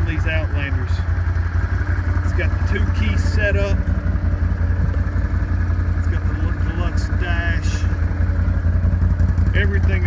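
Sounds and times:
atv engine idling: 0.0 - 10.0.

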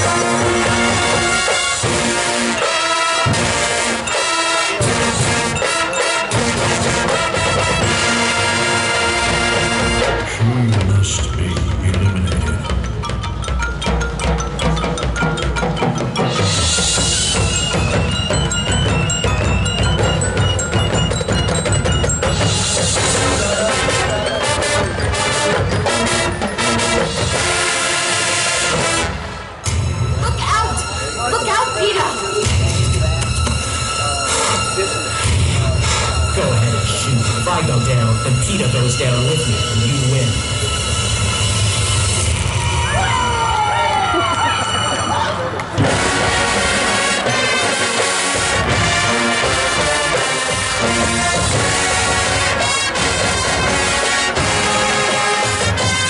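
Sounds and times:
sharp percussion strokes: 0.0 - 43.1
low drums: 0.0 - 43.6, 45.6 - 56.0
marching band playing: 0.0 - 56.0.

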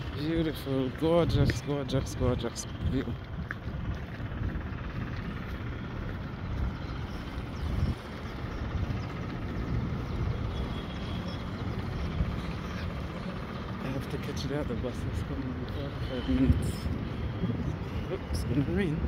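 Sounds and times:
wind rumble on microphone: 0.0 - 13.6, 15.0 - 19.0
distant city traffic: 0.0 - 19.0.

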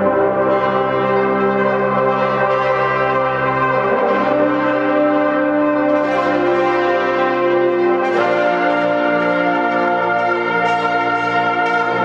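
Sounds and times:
brass ensemble playing chords: 0.0 - 12.0.

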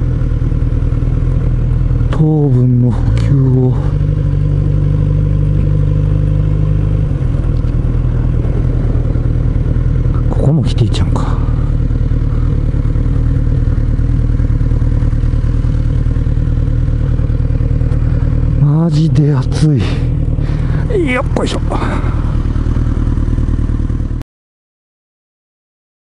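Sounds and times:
motorcycle engine at low revs: 0.0 - 24.2.

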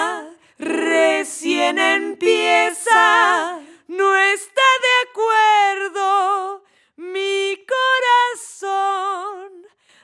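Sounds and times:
woman singing with vibrato: 0.0 - 9.8.

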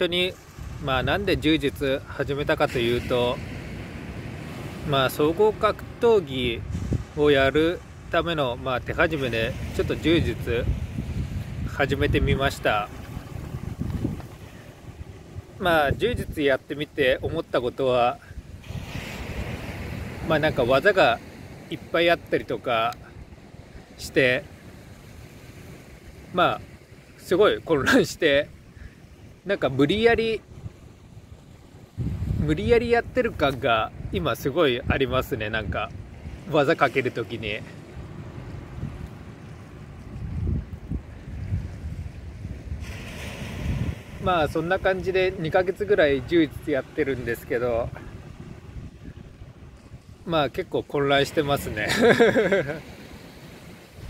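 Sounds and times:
wind buffeting microphone: 0.0 - 21.8, 27.8 - 36.6, 37.3 - 54.0
waves on pebble beach: 0.0 - 54.0
waves breaking on pebbles: 8.9 - 15.6, 18.6 - 21.9, 41.3 - 49.0, 51.2 - 54.0.

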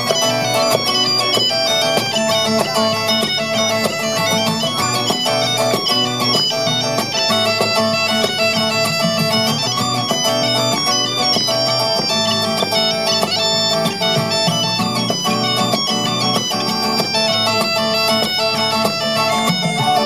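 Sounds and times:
acoustic guitar strumming: 0.0 - 20.0
bagpipe melody over drone: 0.0 - 20.0.

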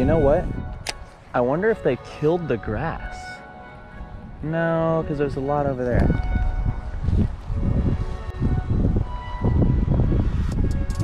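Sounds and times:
soft background music: 0.0 - 11.0
wind buffeting microphone: 0.0 - 11.0.

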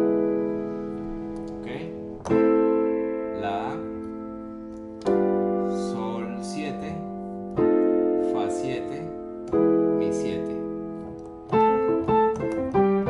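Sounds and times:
piano chords ringing: 0.0 - 13.0.

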